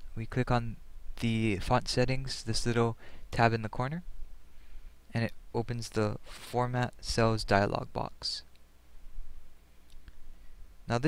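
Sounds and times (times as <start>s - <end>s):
steady low hum: 0.0s - 11.0s
man speaking: 0.2s - 4.0s, 5.1s - 8.5s.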